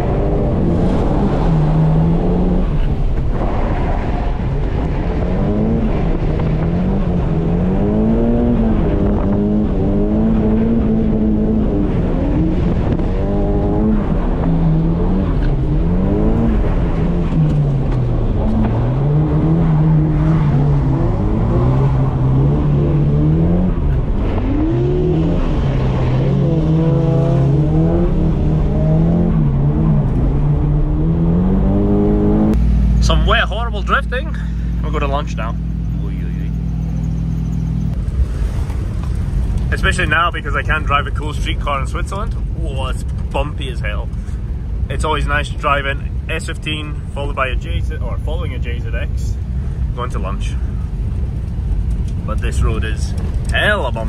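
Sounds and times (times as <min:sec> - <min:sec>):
car engine revving: 0:00.0 - 0:54.0.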